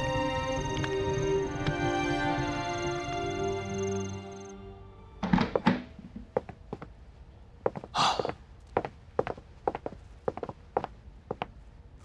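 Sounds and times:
background music: 0.0 - 6.2.

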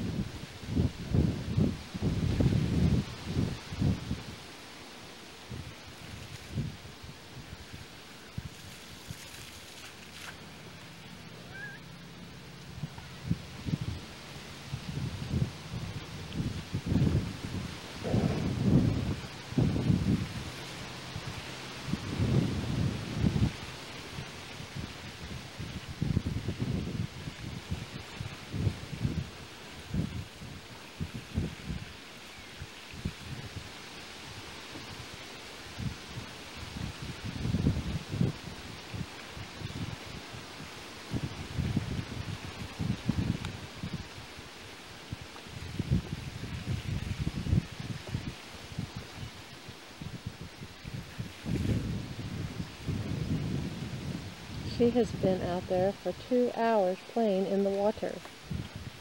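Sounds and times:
wind buffeting microphone: 0.0 - 4.5, 5.4 - 59.0.

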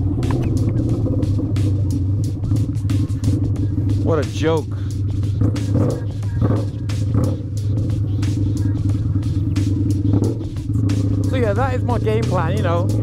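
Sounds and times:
motorcycle engine cruising: 0.0 - 13.0.

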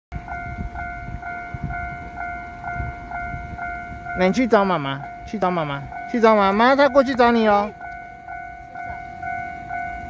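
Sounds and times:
level crossing warning bell: 0.1 - 10.0.

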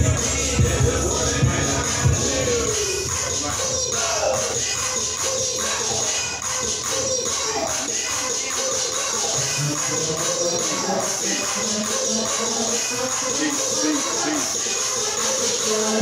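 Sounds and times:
background music with beat and melody: 0.0 - 16.0.

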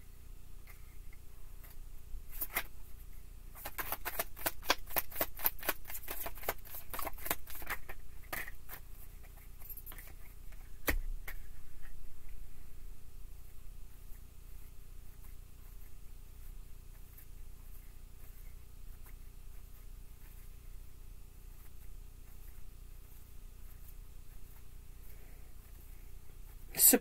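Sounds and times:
cards being shuffled: 1.6 - 2.8, 3.5 - 12.0.

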